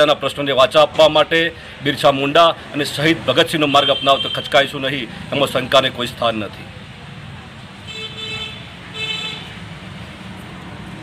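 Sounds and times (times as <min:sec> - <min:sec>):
low traffic rumble: 0:00.0 - 0:11.0.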